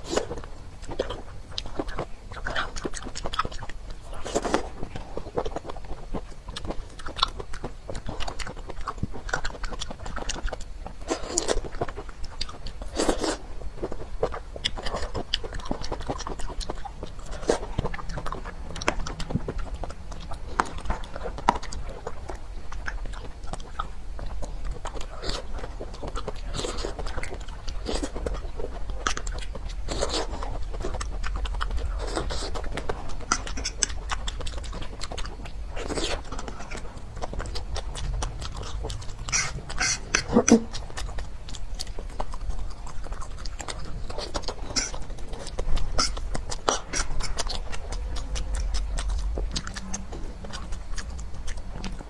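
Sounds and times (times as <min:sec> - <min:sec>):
chewing soft candy: 0:00.0 - 0:52.0.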